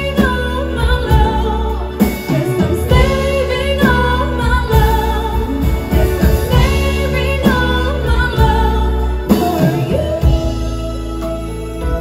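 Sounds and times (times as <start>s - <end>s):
instrumental accompaniment with bass: 0.0s - 12.0s
woman singing slow ballad: 0.0s - 12.0s.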